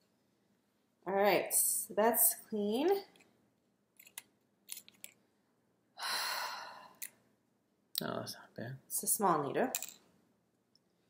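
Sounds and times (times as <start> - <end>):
person sighing: 6.0 - 7.0.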